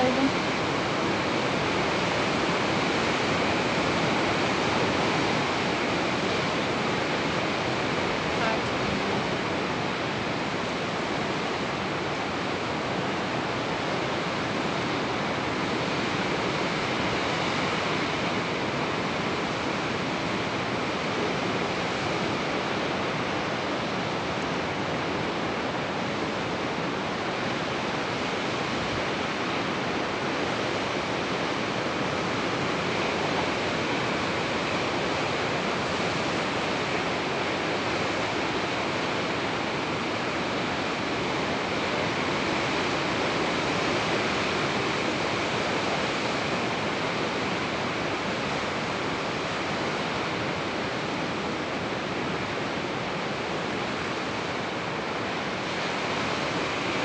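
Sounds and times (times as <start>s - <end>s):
ocean surf roaring: 0.0s - 57.0s.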